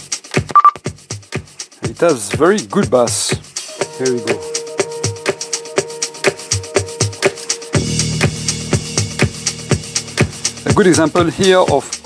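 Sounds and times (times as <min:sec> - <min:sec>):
music with steady beat: 0:00.0 - 0:12.0
heavy bass line: 0:03.7 - 0:12.0.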